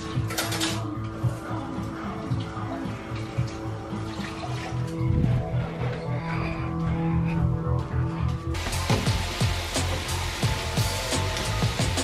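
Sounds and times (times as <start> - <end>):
music with kick-drum beat: 8.6 - 12.0
potatoes sizzling in oil: 8.6 - 12.0.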